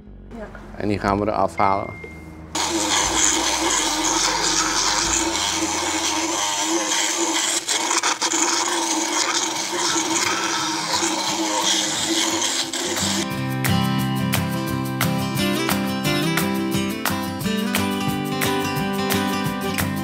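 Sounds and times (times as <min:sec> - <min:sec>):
dental float grinding teeth: 0:02.6 - 0:13.2.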